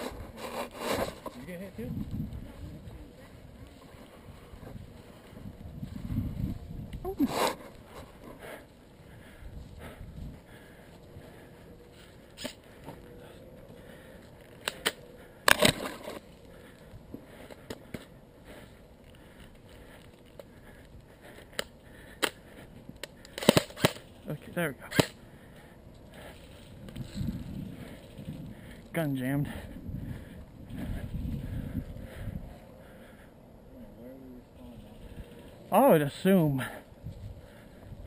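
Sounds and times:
airsoft rifle clicks and snaps: 14.6s - 16.2s, 23.0s - 24.1s, 24.9s - 25.2s.

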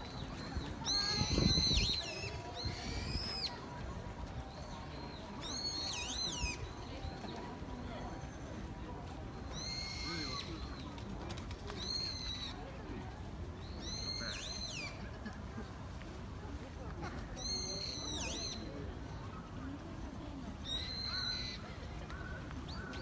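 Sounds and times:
bird shrill whistled calls: 9.5s - 10.5s.

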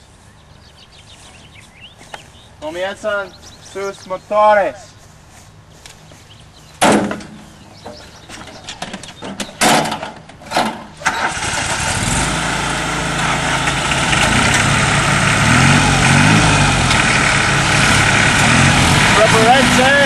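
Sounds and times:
lawn mower engine starting: 8.3s - 20.0s.

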